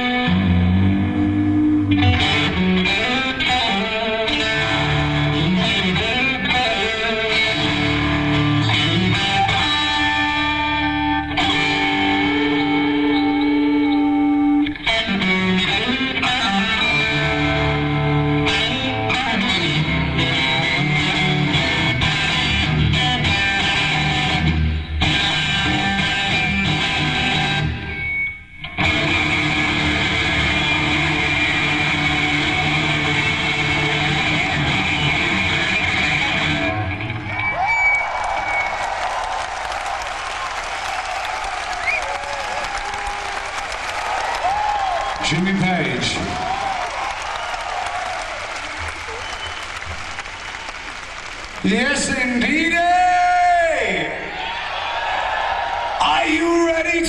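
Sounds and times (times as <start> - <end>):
electric guitar solo: 0.0 - 39.1
audience applauding and cheering: 36.2 - 56.8.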